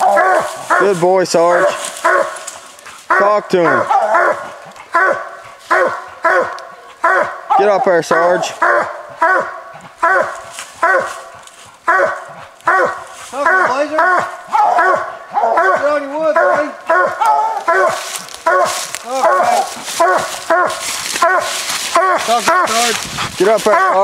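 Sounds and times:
rustling and scraping: 0.0 - 3.2, 9.8 - 13.6, 17.6 - 24.0
hounds barking: 0.0 - 24.0.

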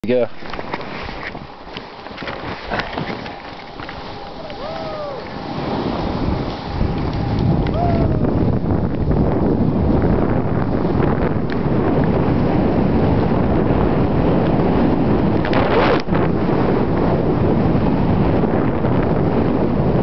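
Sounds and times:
wind buffeting microphone: 0.0 - 20.0
snowboard scraping over snow: 0.2 - 20.0.

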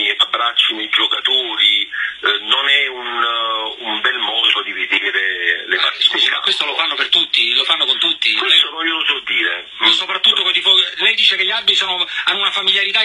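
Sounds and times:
men talking over telephone line: 0.0 - 13.0.

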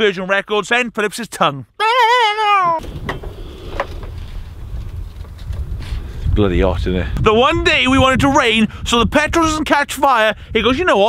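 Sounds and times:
wind on microphone: 2.8 - 11.0.

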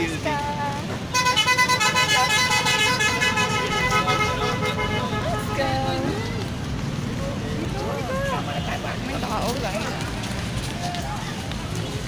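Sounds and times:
park ambient hum: 0.0 - 12.0
people's voices: 0.0 - 12.0.

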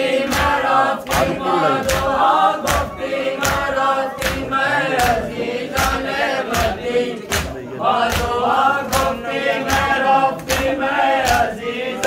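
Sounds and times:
crowd of men chanting: 0.0 - 12.0
hands slapping chests: 0.3 - 12.0.

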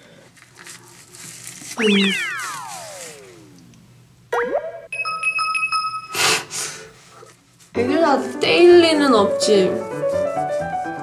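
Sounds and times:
cartoon falling whistle: 1.8 - 3.5.

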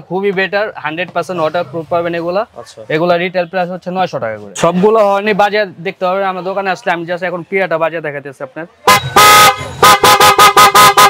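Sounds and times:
electric horn blasts and toots: 8.9 - 11.0.

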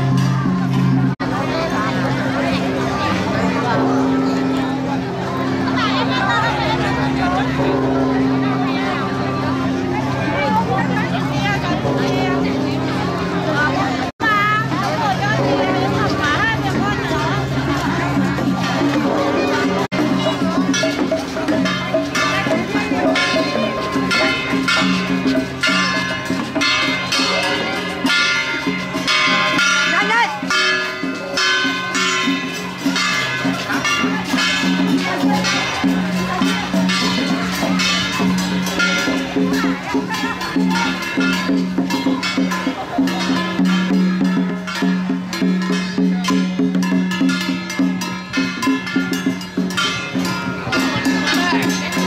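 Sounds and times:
crowd talking: 0.0 - 52.0
hand gongs struck in steady beat: 0.0 - 52.0.

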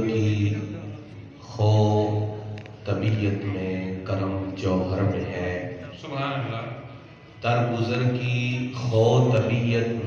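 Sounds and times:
man chanting into microphone: 7.4 - 10.0.

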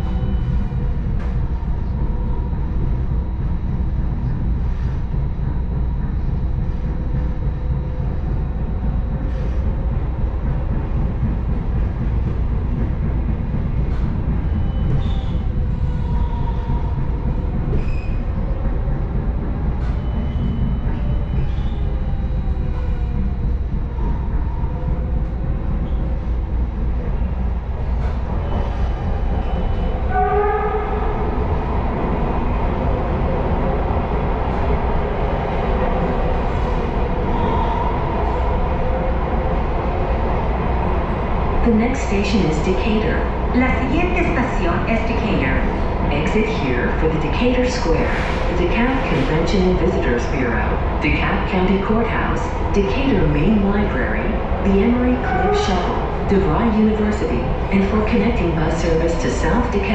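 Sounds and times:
train wheels rumbling on track: 0.0 - 59.9.

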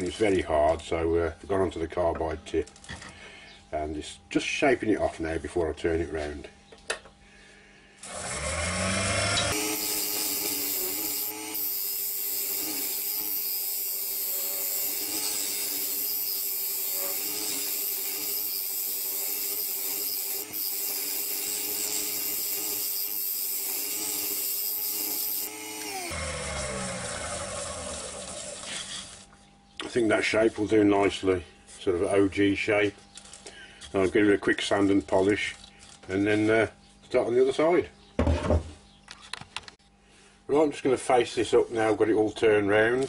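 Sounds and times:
wood lathe humming: 8.0 - 28.9.

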